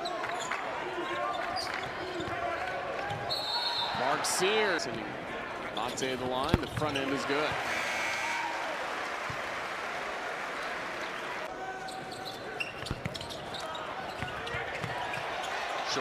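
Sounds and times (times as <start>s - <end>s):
crowd noise: 0.0s - 16.0s
basketball bouncing on court: 6.1s - 7.7s, 12.6s - 15.4s.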